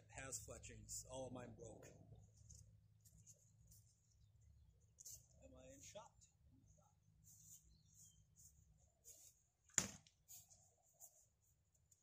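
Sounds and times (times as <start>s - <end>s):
spear hitting cardboard box: 9.8s - 10.1s.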